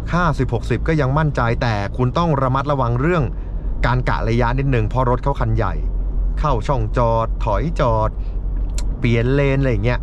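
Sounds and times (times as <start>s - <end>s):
diesel engine drone: 0.0s - 10.0s
man speaking: 0.0s - 10.0s
road noise inside car: 0.0s - 10.0s.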